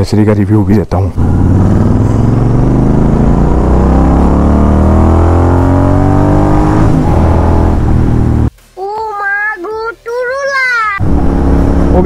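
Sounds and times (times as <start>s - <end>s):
motorcycle engine accelerating: 1.1s - 8.5s, 11.0s - 12.0s.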